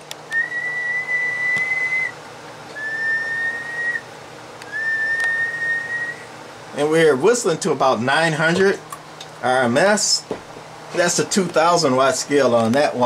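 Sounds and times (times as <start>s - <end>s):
person whistling held notes: 0.3s - 2.2s, 2.8s - 4.0s, 4.7s - 6.2s.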